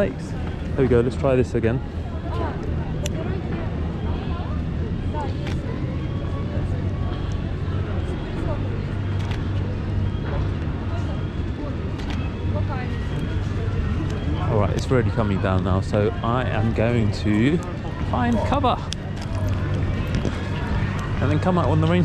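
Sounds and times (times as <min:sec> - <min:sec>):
low city rumble: 0:00.0 - 0:22.0
people talking: 0:00.0 - 0:22.0.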